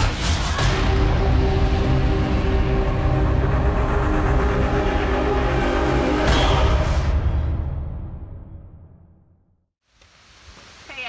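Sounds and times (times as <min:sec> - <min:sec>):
cinematic intro music: 0:00.0 - 0:09.7.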